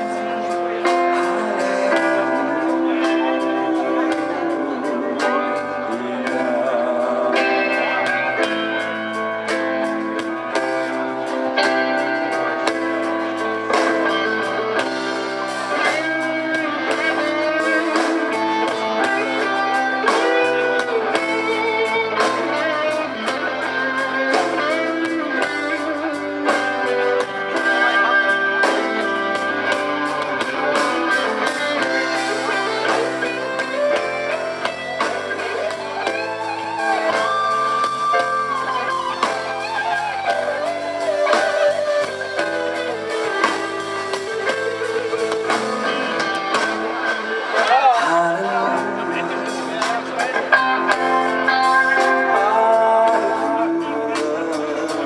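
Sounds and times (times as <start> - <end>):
electric guitar lead line: 0.0 - 55.0
steady drums: 0.0 - 55.0.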